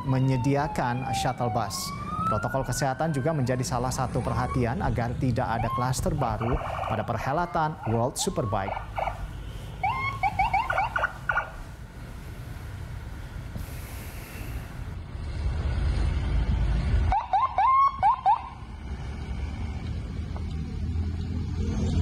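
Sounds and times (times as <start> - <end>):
electronic siren sweeping: 0.0 - 11.6.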